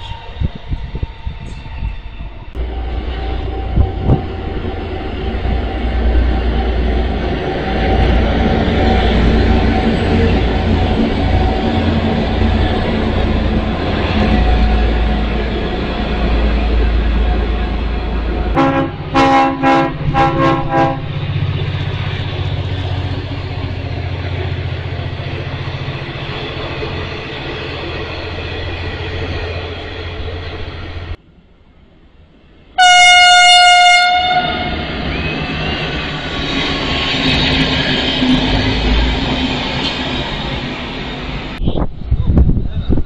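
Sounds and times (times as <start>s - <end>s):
passing train rumbling: 0.0s - 43.0s
train horn blasts: 18.5s - 21.2s, 32.8s - 34.9s.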